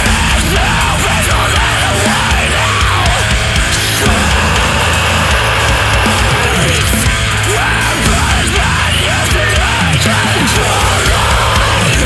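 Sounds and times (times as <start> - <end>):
deathcore band playing: 0.0 - 12.0.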